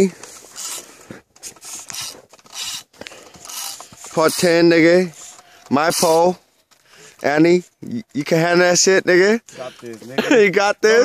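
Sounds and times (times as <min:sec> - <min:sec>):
rubbing and scraping handling noises: 0:00.0 - 0:08.4.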